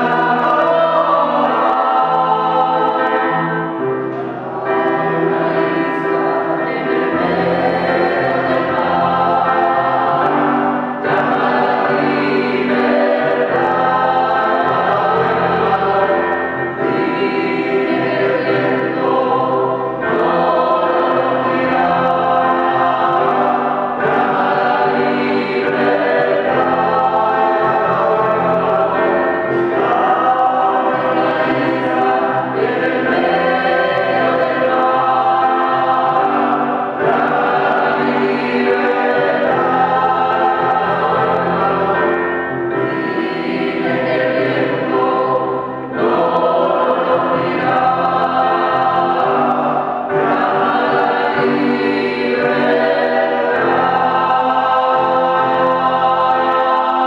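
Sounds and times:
choir singing: 0.0 - 57.0
electronic keyboard: 0.0 - 57.0.

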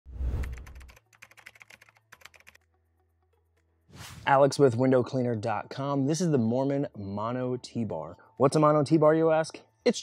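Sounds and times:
sharp typing-like clicks: 0.4 - 2.6.

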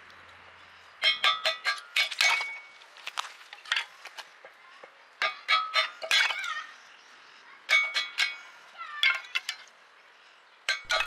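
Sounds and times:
sticks clattering on metal frame: 1.0 - 4.6, 5.2 - 6.7, 7.6 - 9.7, 10.7 - 11.0
metallic ringing: 10.7 - 11.0
wood striking steel blade: 10.7 - 11.0.

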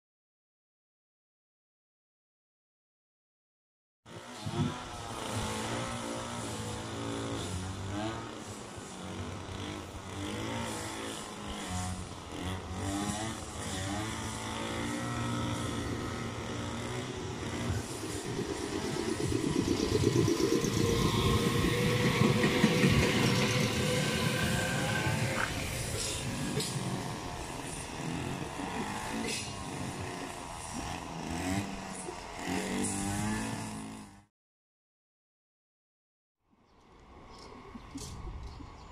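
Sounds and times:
wheel-on-rail noise: 4.1 - 34.2
electric train motor whine: 4.4 - 33.8.

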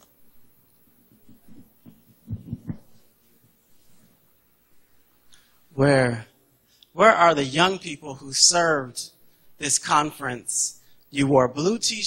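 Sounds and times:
microphone handling thumps: 1.2 - 3.6.

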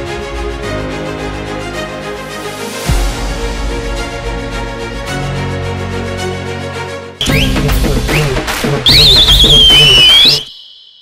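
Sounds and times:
loud warbling high whistle: 7.2 - 11.0
rising whistle slides: 8.9 - 11.0.

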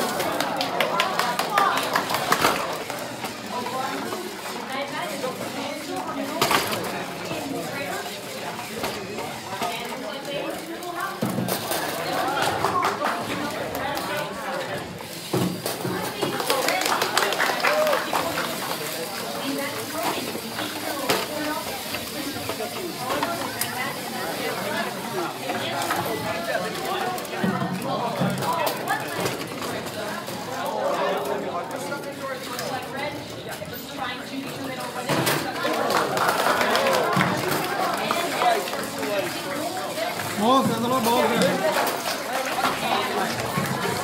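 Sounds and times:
crowd chatter in a hall: 0.0 - 44.0.

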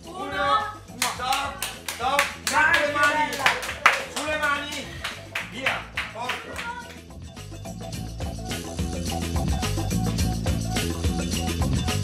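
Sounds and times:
music: 0.0 - 12.0
people clapping in rhythm: 0.8 - 7.8.

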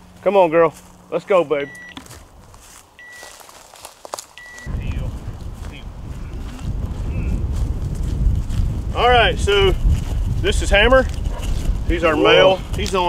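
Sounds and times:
short high beeps: 1.6 - 2.0, 3.0 - 3.4, 4.4 - 4.7
wind buffeting microphone: 4.6 - 13.0.

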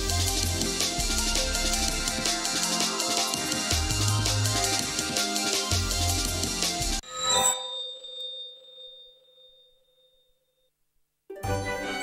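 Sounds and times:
bell-like chime ringing: 7.0 - 10.7.

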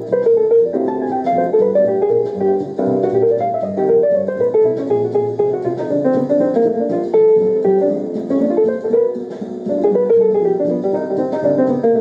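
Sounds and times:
instrumental guitar music: 0.0 - 12.0.

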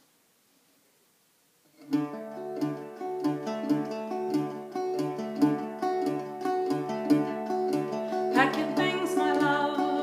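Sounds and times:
mandola plucked notes: 1.8 - 10.0.

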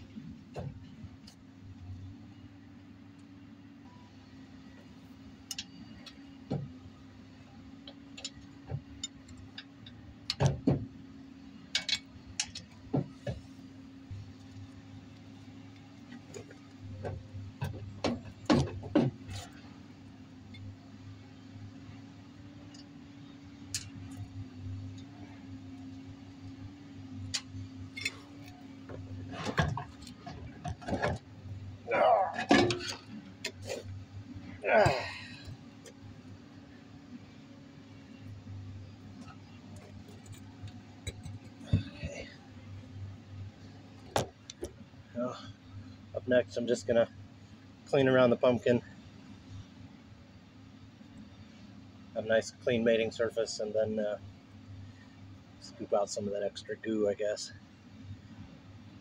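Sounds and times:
steady low hum: 0.0 - 59.0
metal clunks and knocks: 10.3 - 11.0, 16.2 - 19.5, 27.3 - 31.4, 32.3 - 33.9, 39.2 - 42.4.

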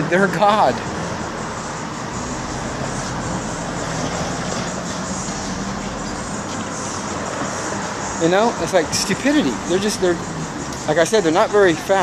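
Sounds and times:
road traffic: 0.0 - 12.0
vehicle engine humming: 0.0 - 12.0.

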